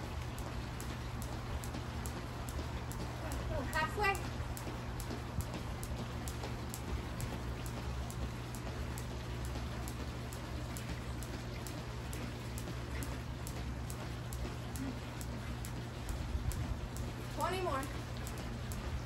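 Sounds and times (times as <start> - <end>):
skipping rope slapping concrete: 0.0 - 19.0.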